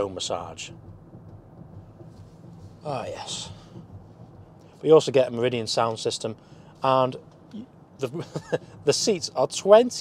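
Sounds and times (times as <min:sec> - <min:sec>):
faint low car cabin hum: 0:00.0 - 0:10.0.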